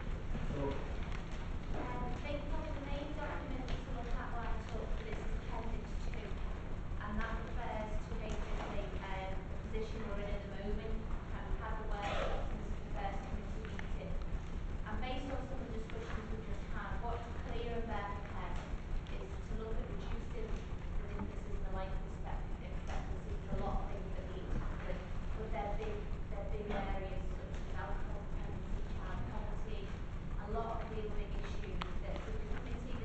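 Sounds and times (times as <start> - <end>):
steady low rumble: 0.0 - 33.0
person speaking: 0.4 - 0.9.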